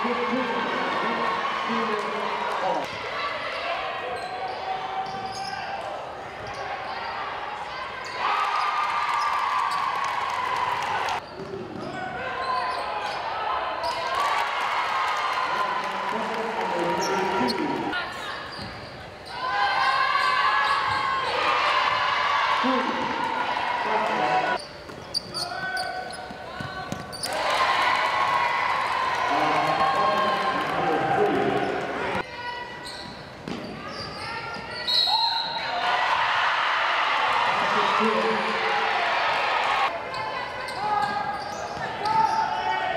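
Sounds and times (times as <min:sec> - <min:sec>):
voices echoing in gym: 0:00.0 - 0:42.9.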